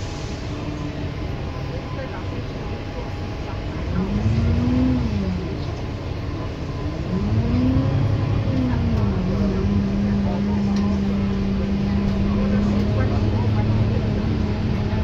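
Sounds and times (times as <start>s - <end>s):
bus engine droning: 0.0s - 15.0s
road noise: 0.0s - 15.0s.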